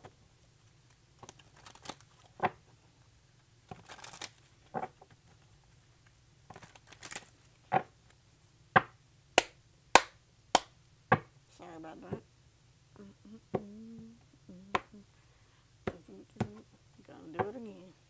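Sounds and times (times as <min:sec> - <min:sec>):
cards rustling while shuffled: 0:00.6 - 0:02.7, 0:03.7 - 0:07.6.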